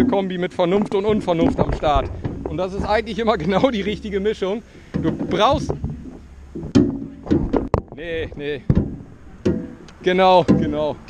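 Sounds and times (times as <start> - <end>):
person talking: 0.0 - 5.8.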